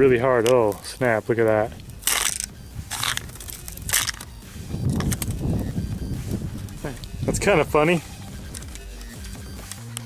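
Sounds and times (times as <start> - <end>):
lubed latex rubbing and stretching: 0.0 - 10.0.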